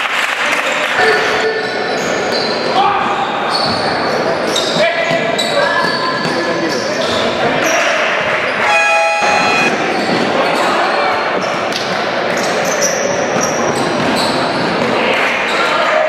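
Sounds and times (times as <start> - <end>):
sneakers squeaking: 3.2 - 10.7, 12.4 - 14.7
voices calling out: 8.5 - 10.0
single tone: 8.6 - 9.8.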